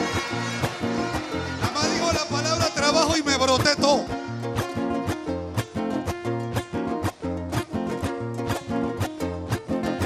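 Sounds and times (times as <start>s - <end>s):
guitars strummed: 0.0s - 10.0s.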